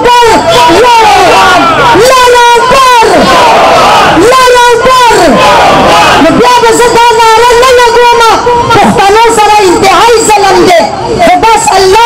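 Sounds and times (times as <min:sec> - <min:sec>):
crowd voices: 0:00.0 - 0:12.0
woman shouting into microphone: 0:00.0 - 0:12.0.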